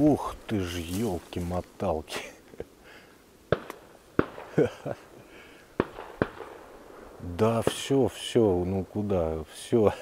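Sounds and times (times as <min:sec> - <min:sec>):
distant shotgun shots: 0:03.5 - 0:04.6, 0:05.8 - 0:07.9.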